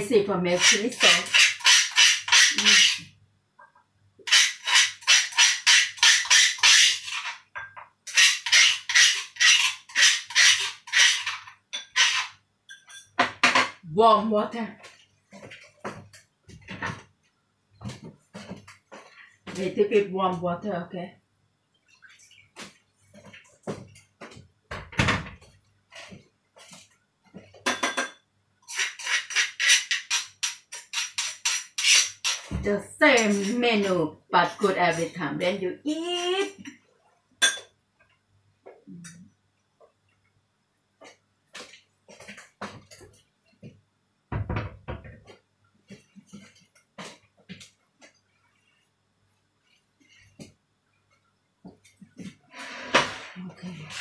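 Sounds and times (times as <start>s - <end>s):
pestle strokes in mortar: 0.5s - 3.1s, 4.3s - 7.4s, 8.1s - 12.3s, 28.7s - 34.0s
spoon clinking in stone mortar: 12.7s - 13.2s.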